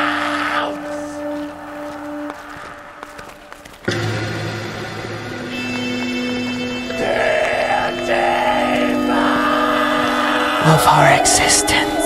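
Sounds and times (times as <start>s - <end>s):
experimental electronic rock music: 3.8s - 12.0s
loud low chord: 3.8s - 12.0s.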